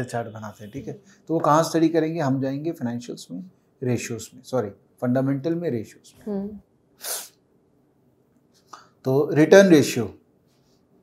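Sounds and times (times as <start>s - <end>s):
person speaking: 0.0s - 7.3s
person sharp breath: 7.0s - 7.4s.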